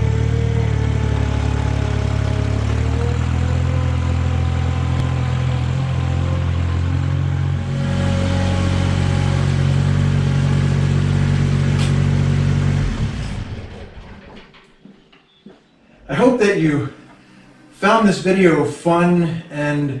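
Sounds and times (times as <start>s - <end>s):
tractor diesel engine running: 0.0s - 14.6s.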